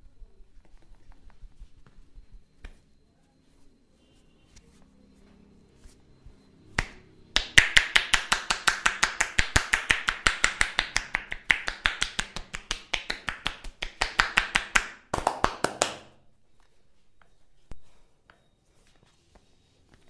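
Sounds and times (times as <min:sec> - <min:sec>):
hands slapping bare back: 0:02.6 - 0:02.8, 0:06.7 - 0:16.1.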